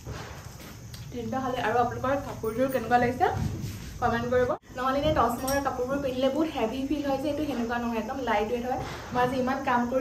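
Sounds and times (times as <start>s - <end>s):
woman speaking: 1.1s - 10.0s.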